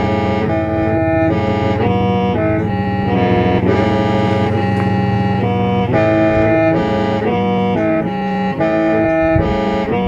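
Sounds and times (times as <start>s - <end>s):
bamboo mouth organ playing: 0.0s - 10.0s.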